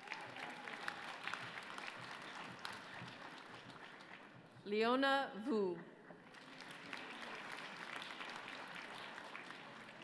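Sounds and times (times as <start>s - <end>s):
audience applause: 0.0s - 4.4s, 6.2s - 10.0s.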